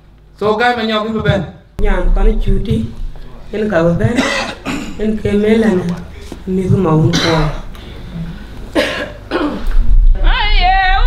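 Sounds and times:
person coughing: 4.1 - 5.1, 7.1 - 7.7, 8.8 - 9.8.

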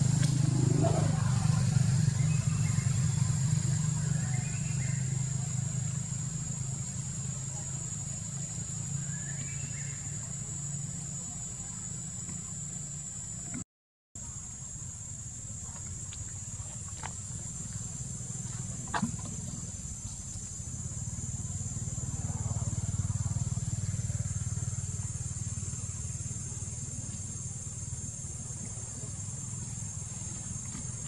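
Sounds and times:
low rumble: 0.0 - 4.5.

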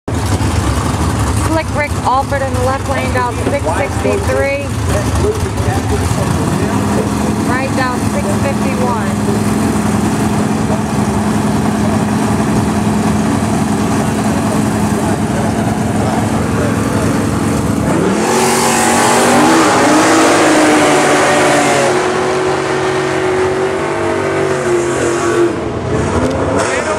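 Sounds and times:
muscle car engines revving: 0.1 - 26.9.

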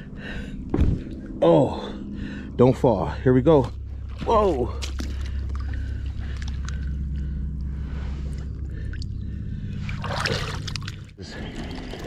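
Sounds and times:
steady low hum: 0.0 - 12.0
water splashing at shore: 9.9 - 11.1.

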